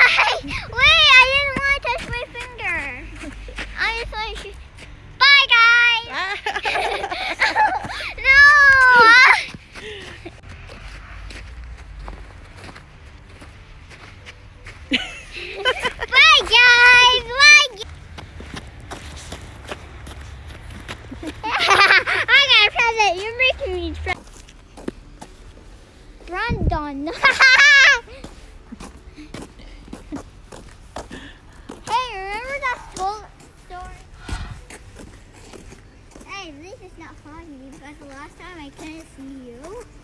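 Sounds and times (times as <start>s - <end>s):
faint outdoor background noise: 0.0s - 40.0s
footsteps on snow: 0.1s - 5.2s, 6.5s - 40.0s.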